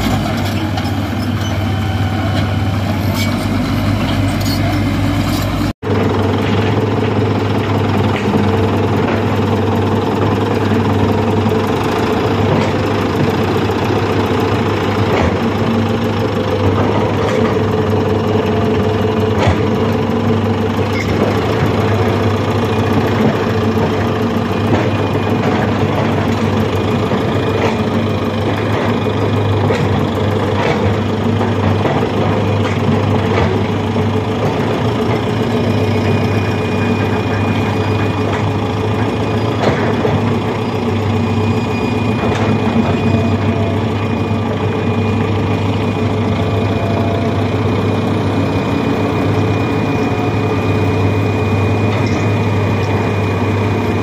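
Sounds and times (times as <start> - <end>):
diesel engine droning: 0.0 - 54.0.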